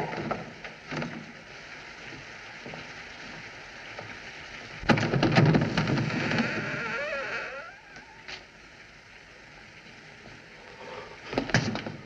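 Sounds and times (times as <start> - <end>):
thuds and knocks: 4.8 - 6.4.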